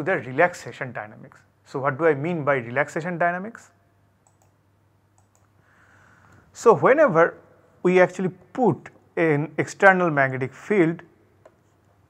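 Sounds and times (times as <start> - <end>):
faint clicks: 4.2 - 5.6.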